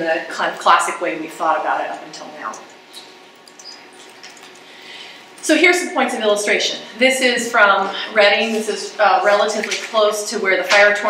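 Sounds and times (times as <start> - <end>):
tiny ticks: 2.5 - 4.6.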